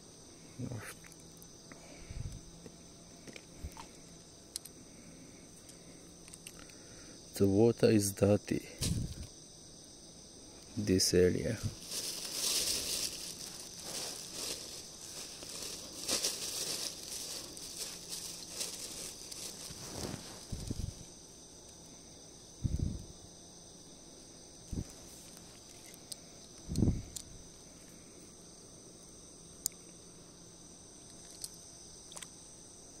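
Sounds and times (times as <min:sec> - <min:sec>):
high-pitched insect chorus: 0:00.0 - 0:33.0
plastic bag rustling: 0:11.6 - 0:21.0.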